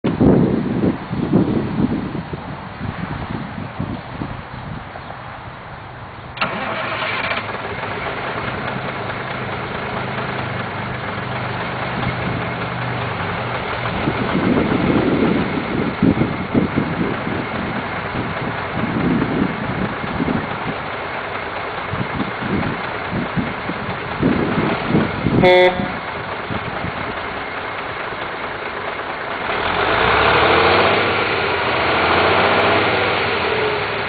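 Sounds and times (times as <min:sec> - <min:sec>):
diesel engine running: 0:00.1 - 0:34.0
starter motor whining: 0:06.4 - 0:08.8.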